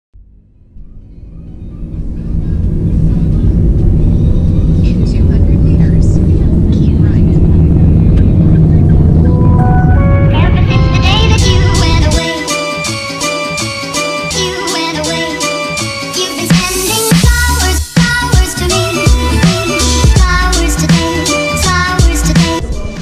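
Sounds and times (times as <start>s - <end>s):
music: 0.2s - 23.0s
car cabin rumble: 0.8s - 12.2s.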